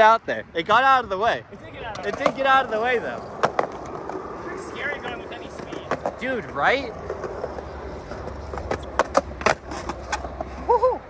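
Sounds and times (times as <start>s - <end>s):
skateboard wheels rolling on concrete: 1.0s - 11.0s
skateboard wooden clacks: 1.8s - 10.5s.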